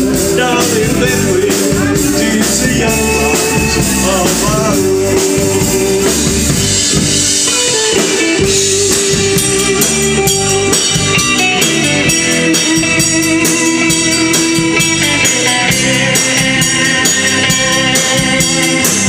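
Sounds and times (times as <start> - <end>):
electric guitar lead: 0.0 - 19.0
steady drum beat: 0.0 - 19.0.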